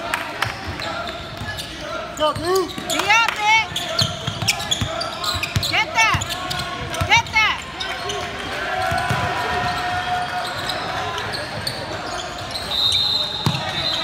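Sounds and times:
voices echoing in a hall: 0.0 - 14.0
sneakers squeaking on hardwood: 0.8 - 8.2, 8.8 - 14.0
basketball bouncing: 8.8 - 9.7.

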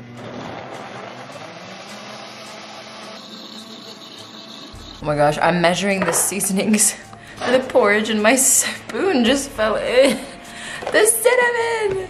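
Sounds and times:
blender running: 0.0 - 5.0.

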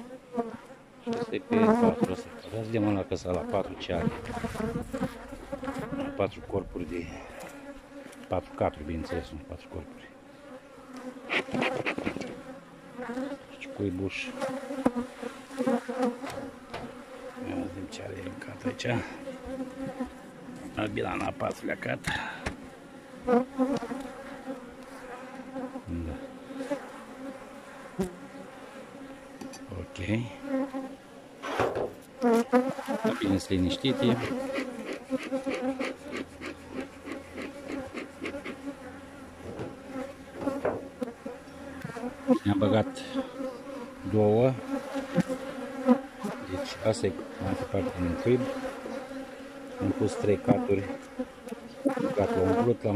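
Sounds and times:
honeybees buzzing: 0.0 - 52.9.

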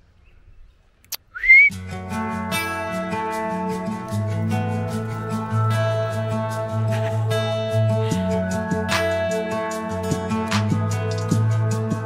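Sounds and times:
person whistling rising whistle: 1.3 - 1.8
guitar background music: 1.7 - 12.0.

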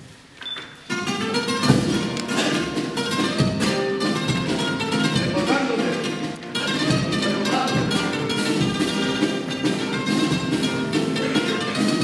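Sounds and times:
strummed spanish guitars: 0.8 - 12.0
deep drum beats: 1.5 - 12.0.

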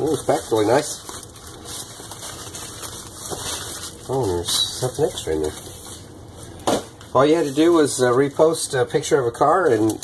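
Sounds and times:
bubble wrap rustling and crinkling: 0.0 - 8.6.

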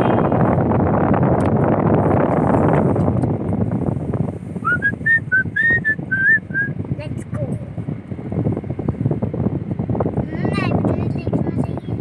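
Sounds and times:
car cabin rumble: 0.0 - 12.0
person whistling a tune: 4.6 - 6.7.

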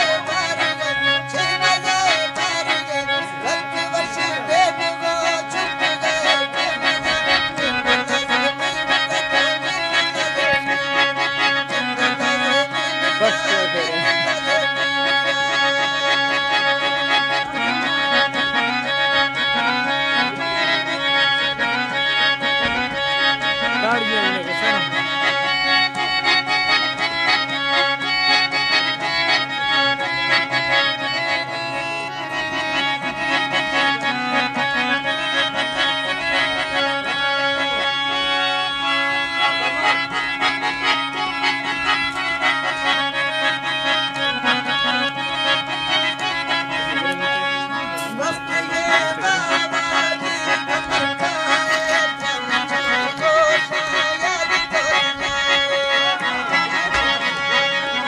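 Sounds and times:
harmonium folk melody: 0.0 - 58.0.

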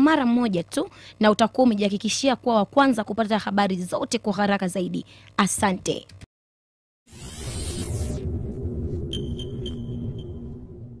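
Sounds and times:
bright electronic pings: 9.1 - 10.5.

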